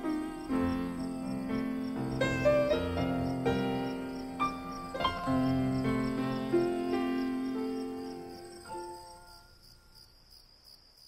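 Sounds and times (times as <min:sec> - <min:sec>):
held song notes: 0:00.0 - 0:09.3
crickets chirping: 0:00.0 - 0:11.0.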